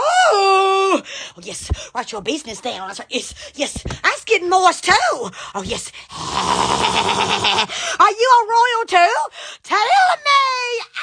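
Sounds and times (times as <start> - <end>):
woman making rasping voice noise: 0.0 - 11.0.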